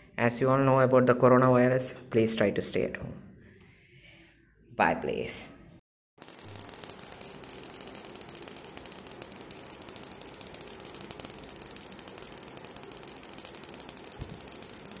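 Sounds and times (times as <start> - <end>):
tesla coil crackling sparks: 6.2 - 15.0.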